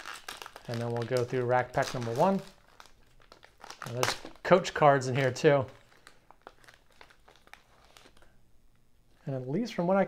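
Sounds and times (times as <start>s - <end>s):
plastic wrapper crinkling: 0.0s - 8.4s.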